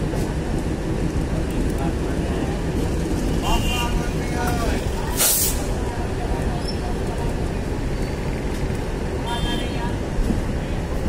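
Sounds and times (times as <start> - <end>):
train wheels rumbling: 0.0 - 11.0
sharp air hiss: 5.1 - 5.8.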